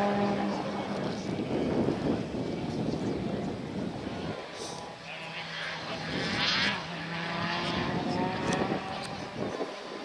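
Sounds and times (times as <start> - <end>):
rally car engine running: 0.0 - 10.0.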